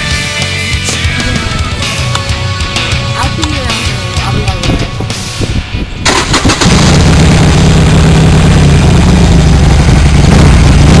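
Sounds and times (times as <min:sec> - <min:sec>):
motorcycle electric starter cranking: 0:06.0 - 0:07.2
motorcycle engine idling: 0:06.1 - 0:11.0.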